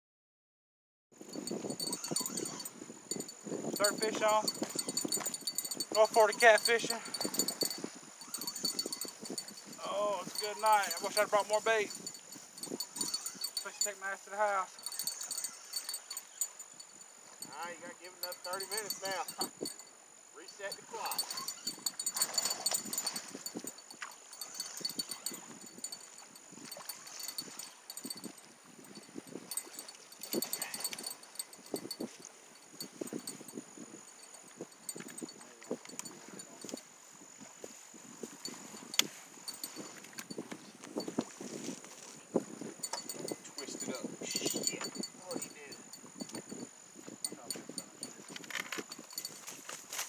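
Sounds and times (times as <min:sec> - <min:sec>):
night insects chirping: 0:01.2 - 0:50.0
fishing handling knocks and rustles: 0:03.2 - 0:13.7, 0:21.1 - 0:28.3, 0:37.5 - 0:43.9, 0:44.6 - 0:45.5, 0:46.2 - 0:50.0
man's voice: 0:06.0 - 0:07.0.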